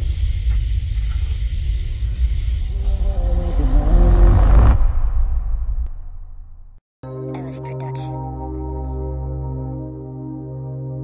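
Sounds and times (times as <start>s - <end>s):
loud deep rumble: 0.0s - 6.8s
droning pitched tone: 2.6s - 6.8s.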